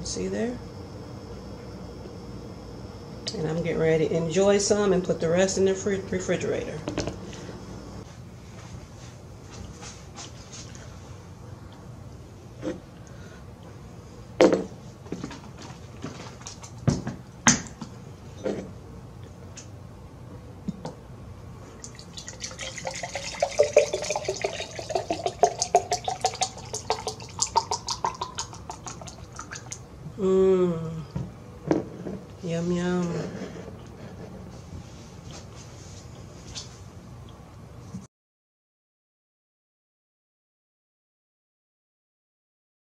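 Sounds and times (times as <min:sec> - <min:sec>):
juice pouring into glass jar: 0:21.8 - 0:29.8.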